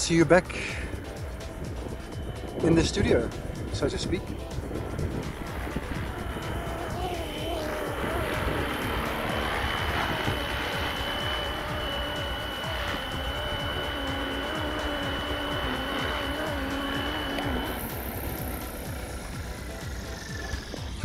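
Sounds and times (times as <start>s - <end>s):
model helicopter motor whine: 0.0s - 21.0s
rotor hum: 0.0s - 21.0s
wind on microphone: 0.0s - 21.0s.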